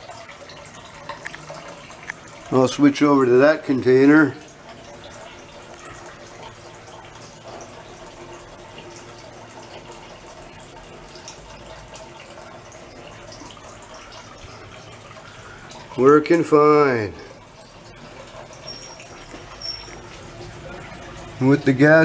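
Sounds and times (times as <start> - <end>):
water trickling and dripping: 0.0 - 22.0.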